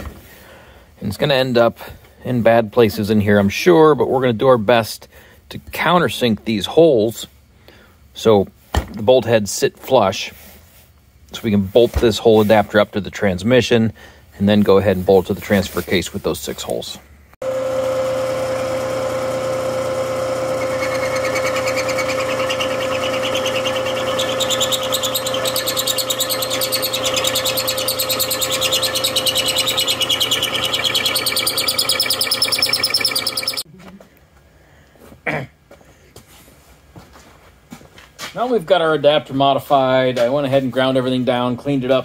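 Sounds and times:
high cutting whine: 17.4s - 33.6s
milling machine hum: 17.4s - 33.6s.

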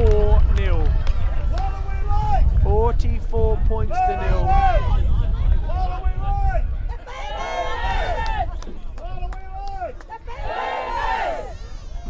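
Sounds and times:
spectators shouting and cheering: 0.0s - 2.6s, 3.8s - 12.0s.

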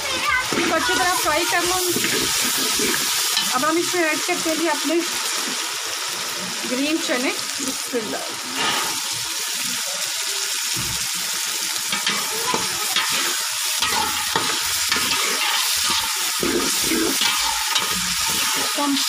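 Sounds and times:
chickpeas sizzling in hot oil: 0.0s - 19.0s
spatula scraping a metal pot: 1.7s - 3.5s, 12.0s - 19.0s.

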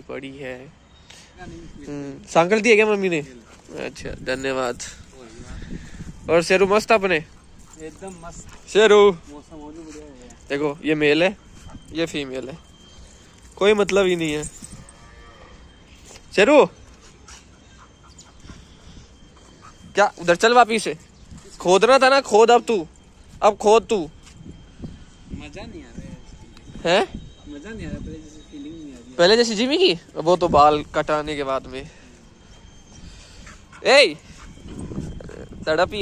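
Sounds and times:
small dog sniffing and panting: 3.2s - 4.0s, 7.1s - 10.3s, 16.9s - 20.0s, 33.3s - 35.5s.

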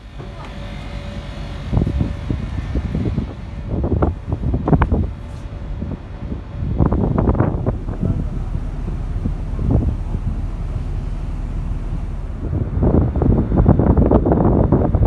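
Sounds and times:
faint steady hum: 0.0s - 15.0s
wind buffeting microphone: 0.0s - 15.0s.

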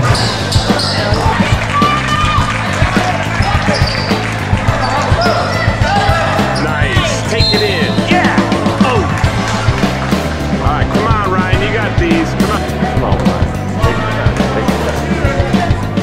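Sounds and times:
sneakers squeaking: 0.0s - 2.5s, 3.3s - 8.1s
voices echoing: 0.0s - 16.0s.

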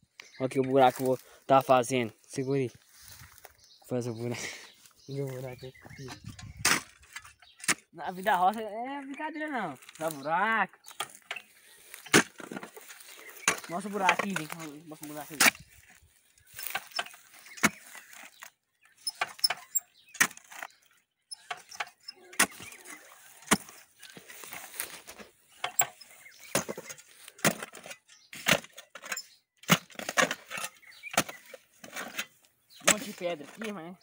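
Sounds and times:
post-hole digger striking stony soil: 6.0s - 7.9s, 10.9s - 15.8s, 16.5s - 33.8s.

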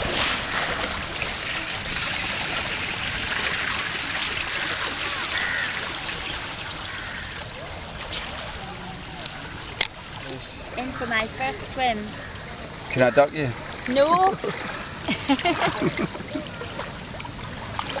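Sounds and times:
swimmer splashing: 0.0s - 12.8s, 13.4s - 18.0s.

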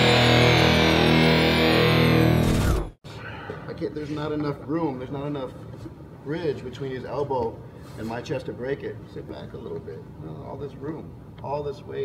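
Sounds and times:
distorted electric guitar intro music: 0.0s - 3.0s.

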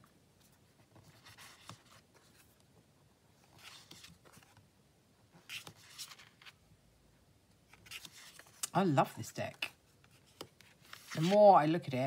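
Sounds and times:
cards rustling on cloth: 0.0s - 4.7s, 5.3s - 6.6s, 7.6s - 12.0s.

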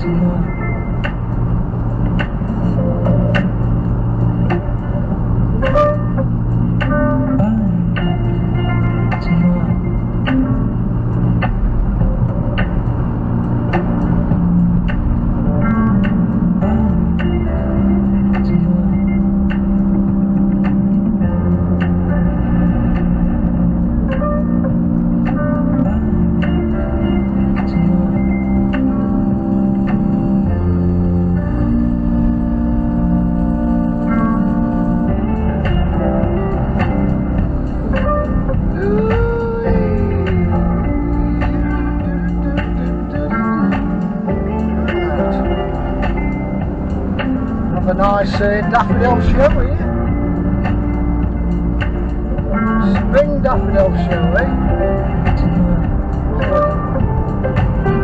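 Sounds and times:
guitar-led music with bass line: 0.0s - 58.0s.

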